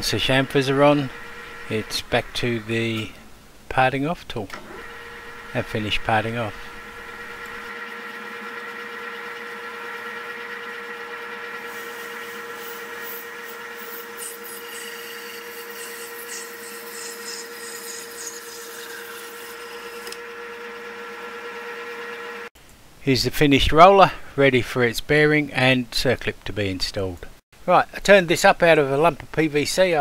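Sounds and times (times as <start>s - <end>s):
lathe humming and whining: 0.0s - 3.3s, 4.5s - 22.5s.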